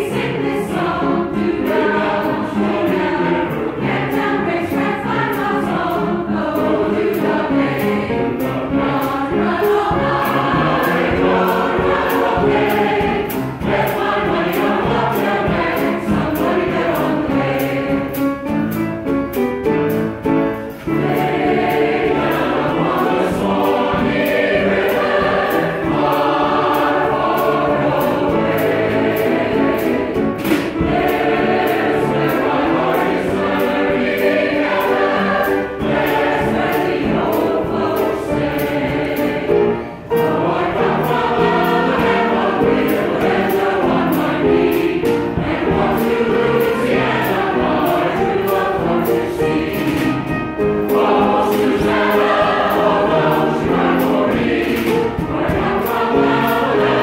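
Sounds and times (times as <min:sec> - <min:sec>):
choir singing: 0:00.0 - 0:18.8, 0:20.5 - 0:57.0.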